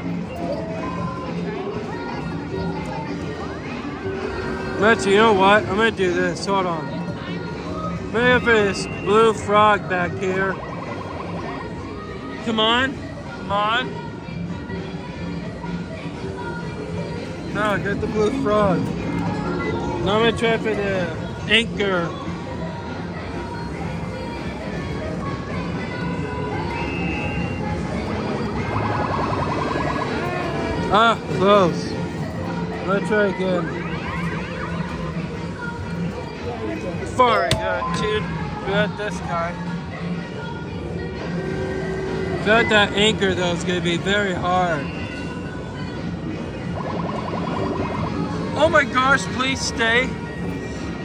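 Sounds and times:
crowd noise: 0.0s - 51.0s
arcade music: 8.2s - 11.8s, 27.8s - 31.9s, 32.9s - 35.9s, 46.5s - 49.8s
short repeated electronic tones: 10.5s - 11.6s, 28.6s - 30.6s, 46.7s - 48.5s.

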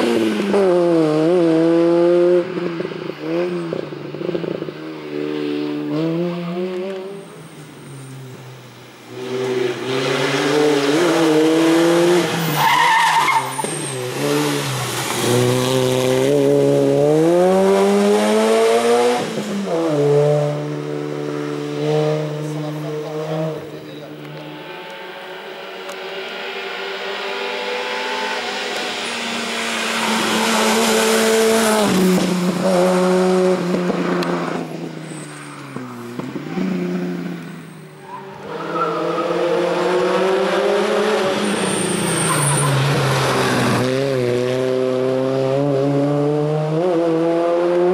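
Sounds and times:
racing car engine accelerating: 9.1s - 34.9s, 38.1s - 47.9s.

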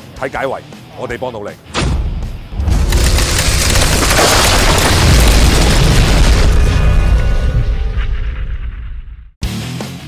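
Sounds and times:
music: 0.0s - 2.9s, 9.4s - 10.0s
boom and rumbling crash: 1.8s - 9.4s.

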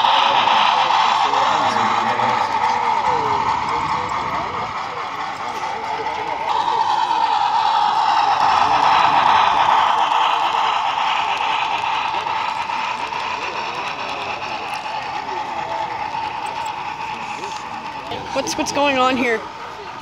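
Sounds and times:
crowd chatter: 0.0s - 20.0s
model trains humming: 0.0s - 20.0s.

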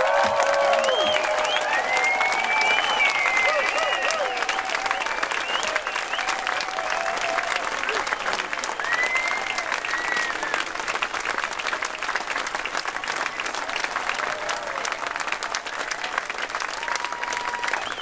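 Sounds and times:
audience clapping: 0.0s - 18.0s
long high whistle: 0.8s - 6.4s.

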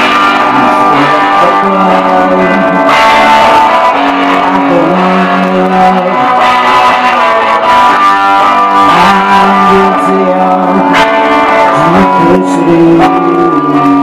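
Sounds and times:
electric guitar chords ringing: 0.0s - 14.0s.

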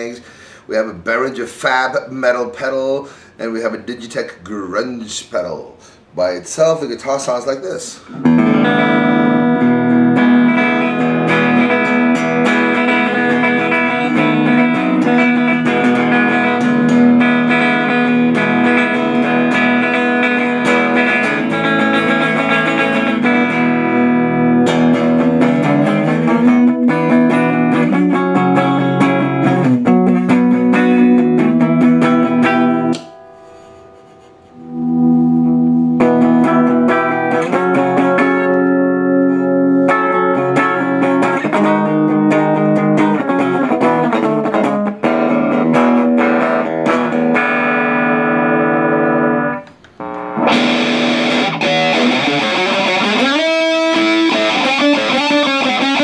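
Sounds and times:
electric guitar strummed chords: 8.0s - 56.0s.

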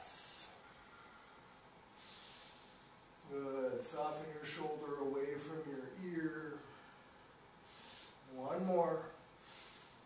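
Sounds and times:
man breathing: 0.0s - 3.1s, 6.6s - 8.3s, 9.3s - 10.0s.

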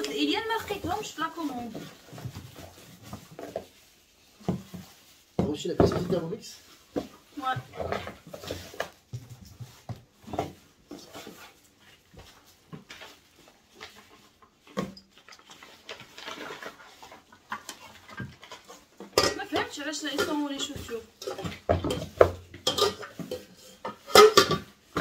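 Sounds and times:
paper and cardboard rustling: 0.0s - 25.0s.

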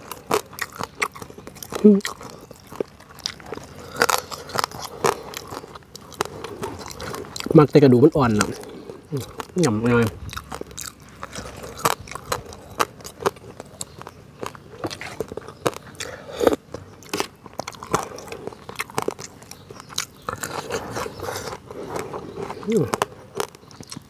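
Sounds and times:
crunching and chewing: 0.0s - 24.0s.

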